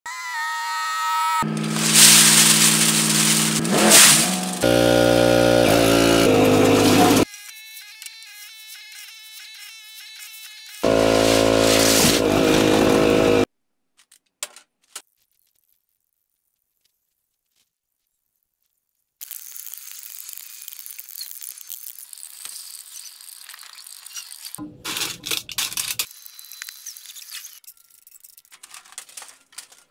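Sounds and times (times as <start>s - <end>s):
loud pitched sounds: 1.4s - 7.2s
aluminium cans rattling: 24.6s - 26.1s.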